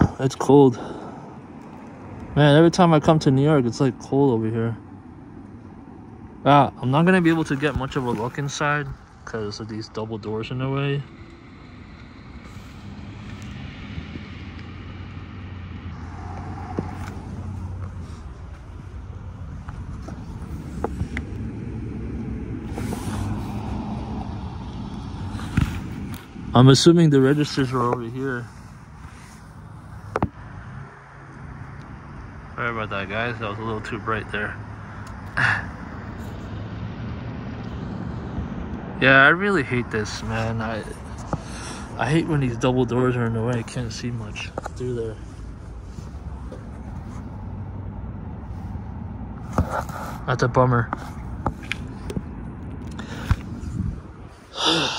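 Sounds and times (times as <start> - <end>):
low outdoor background rumble: 0.0 - 54.9
traffic noise: 0.0 - 54.9
vehicle engine humming: 0.0 - 54.9.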